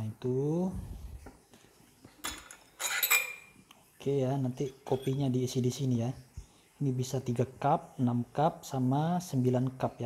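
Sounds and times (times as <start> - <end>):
metal parts clinking: 2.2 - 3.5, 4.8 - 5.3
metallic scrape ringing: 4.6 - 5.3.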